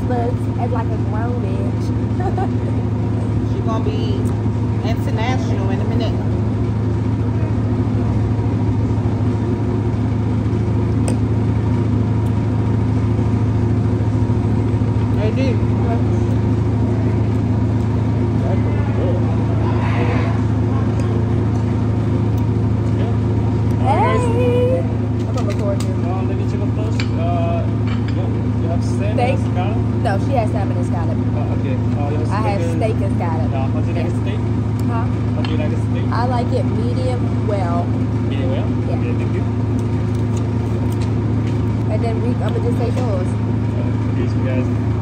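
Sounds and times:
low machine hum: 0.0 - 45.0
diners chattering: 14.9 - 39.7.

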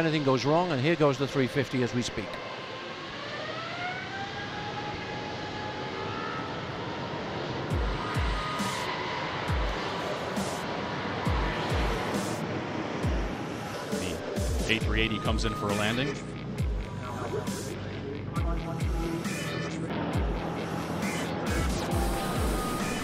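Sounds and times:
jet engines spooling up: 0.0 - 23.0
music with deep bass beat: 7.7 - 23.0.

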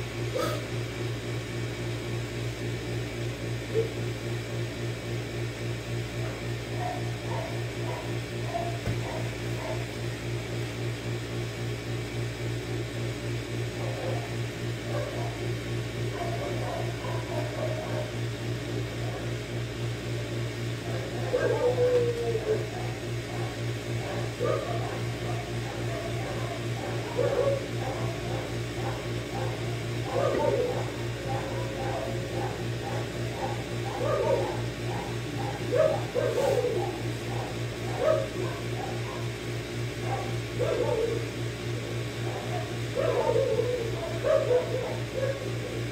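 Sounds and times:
low electrical hum: 0.0 - 45.9.

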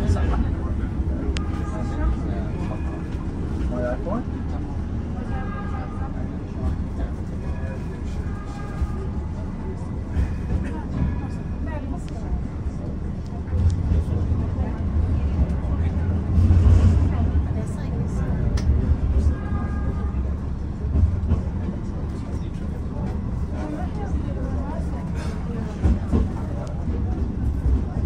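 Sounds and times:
tram rumbling on rails: 0.0 - 28.0
voices: 0.0 - 28.0.

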